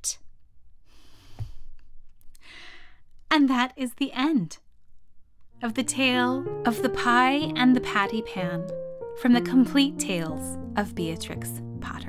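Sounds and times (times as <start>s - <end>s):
woman drawing breath: 0.8s - 1.7s, 2.4s - 3.0s.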